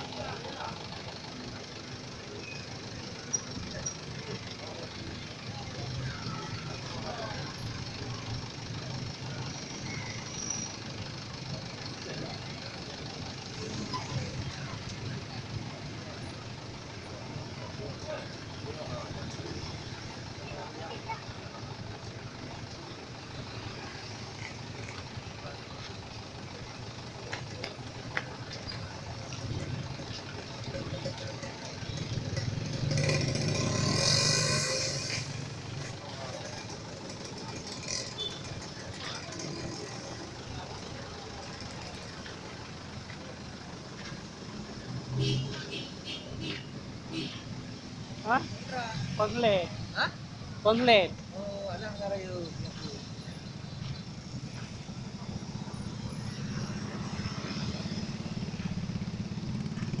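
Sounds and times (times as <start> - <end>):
roadside traffic: 0.0 - 60.0.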